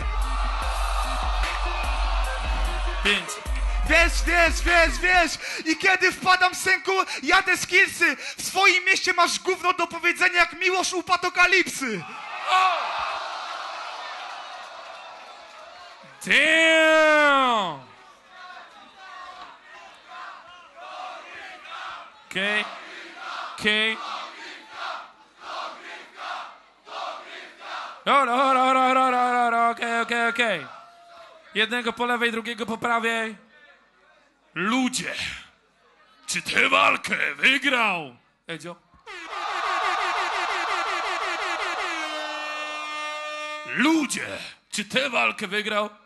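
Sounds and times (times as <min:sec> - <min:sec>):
crowd shouting and cheering: 0:00.0 - 0:07.5, 0:11.6 - 0:31.8, 0:39.0 - 0:44.2
air horn blasts: 0:41.1 - 0:43.9.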